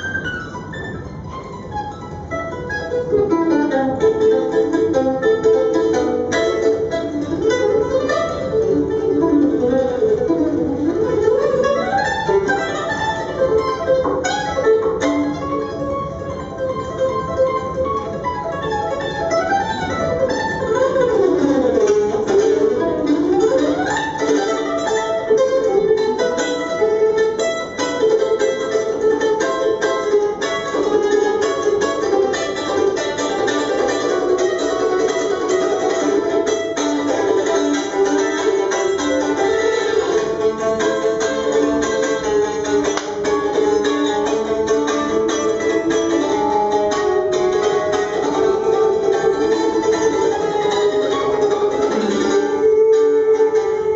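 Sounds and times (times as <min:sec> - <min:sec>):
mandolin picking: 0:00.0 - 0:53.9.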